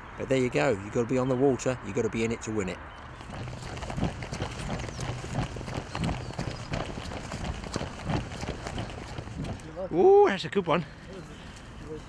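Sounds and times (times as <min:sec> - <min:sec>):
footsteps on grass: 0:03.2 - 0:09.8.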